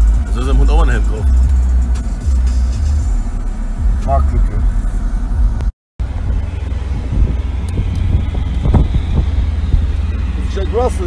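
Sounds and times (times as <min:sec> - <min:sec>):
road rolling rumble: 0:00.0 - 0:11.0
wind buffeting microphone: 0:06.0 - 0:10.5.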